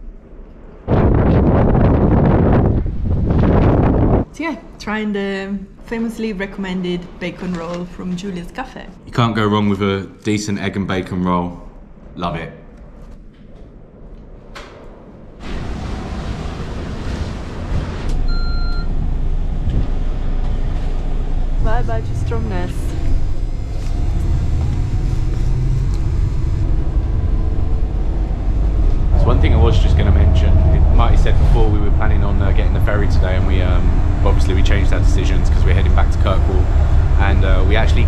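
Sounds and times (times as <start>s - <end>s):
wind blowing across microphone: 0.0s - 4.7s, 12.9s - 38.0s
bus engine running: 15.4s - 38.0s
short electronic beep: 18.3s - 18.9s.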